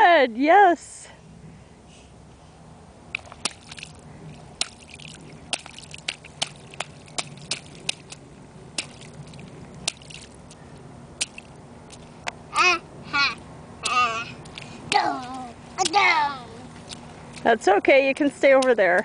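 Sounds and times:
child stomping in mud puddle: 3.1 - 10.5, 13.8 - 17.5.

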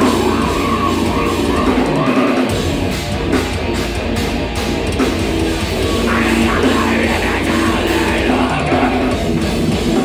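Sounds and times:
heavy metal band playing live: 0.0 - 10.0.

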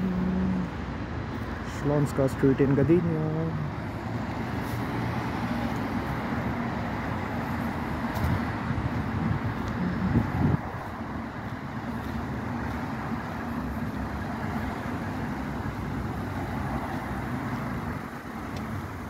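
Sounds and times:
cars driving by: 0.0 - 19.0.

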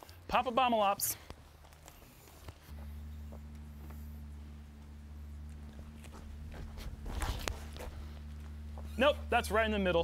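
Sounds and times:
steady low hum: 0.0 - 10.0
footsteps on gravel: 1.2 - 9.5.

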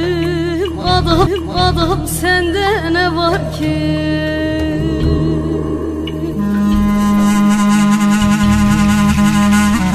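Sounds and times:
long held instrumental note: 4.8 - 9.9.

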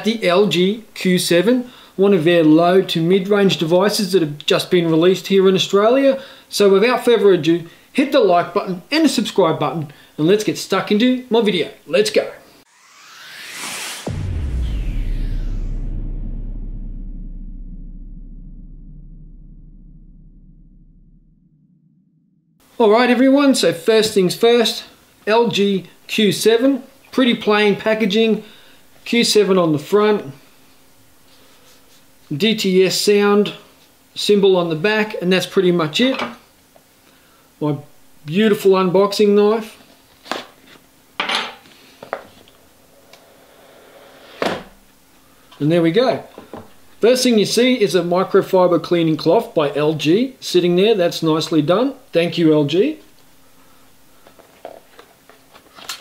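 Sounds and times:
whoosh: 12.7 - 22.6
deep bass impact rumble: 12.8 - 22.6.

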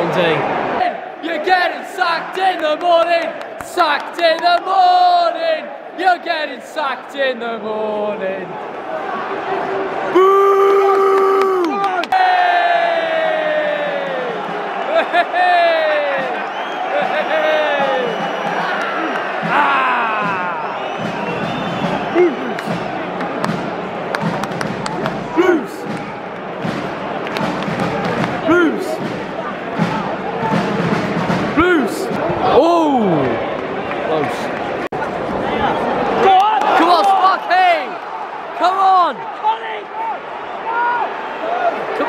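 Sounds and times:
crowd noise: 0.0 - 42.0
fans shouting: 0.0 - 42.0
crowd chanting: 12.1 - 42.0.

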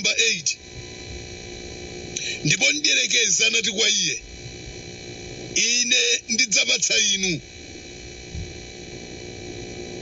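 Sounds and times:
recording hum and hiss: 0.0 - 10.0.

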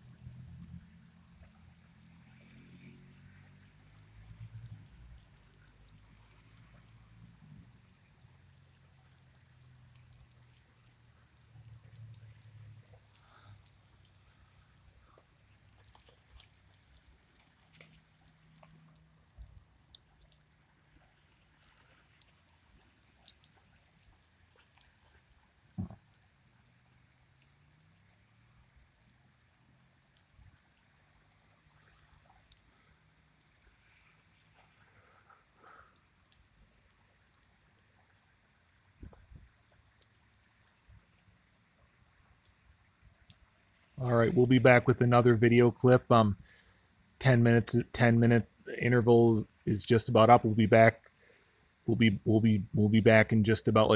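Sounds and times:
raindrops ticking and dripping: 0.0 - 53.9.

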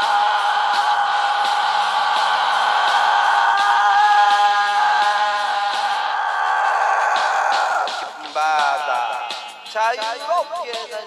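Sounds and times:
rough screaming vocal: 0.0 - 8.3
rock karaoke backing track: 0.0 - 11.0.

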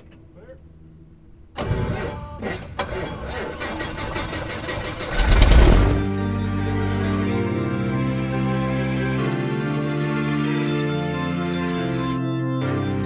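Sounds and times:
aircraft engine starting: 1.5 - 7.3.

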